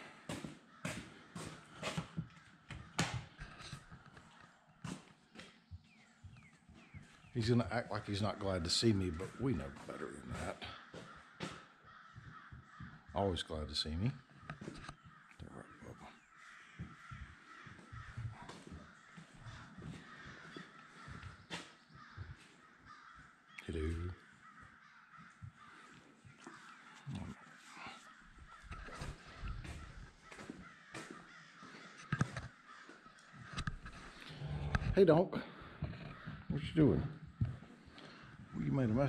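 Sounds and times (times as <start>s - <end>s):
crows cawing: 0.0s - 39.0s.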